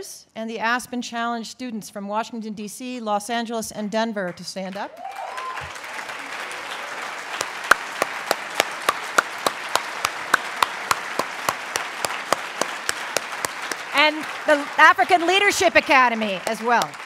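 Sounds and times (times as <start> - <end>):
audience applauding: 4.9 - 17.0
sharp hand claps close by: 6.7 - 14.7, 16.4 - 17.0.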